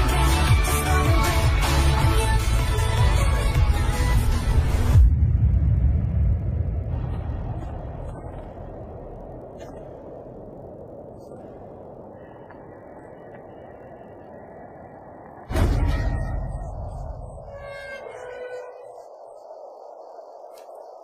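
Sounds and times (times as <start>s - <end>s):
deep bass rumble: 0.0s - 11.2s.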